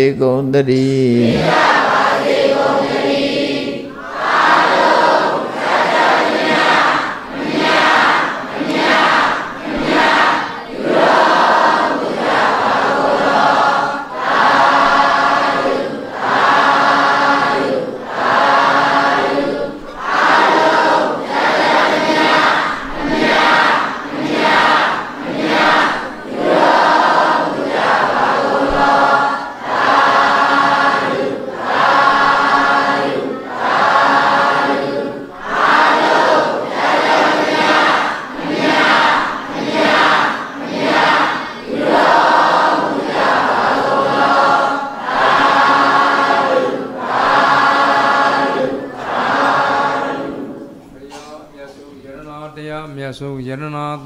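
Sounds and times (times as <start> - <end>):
congregation chanting in unison: 0.0 - 54.0.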